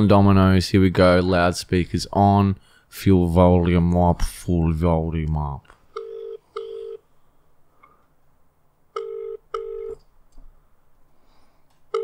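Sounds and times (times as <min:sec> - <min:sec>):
telephone ringback tone beeps: 0:06.0 - 0:07.0, 0:09.0 - 0:10.0.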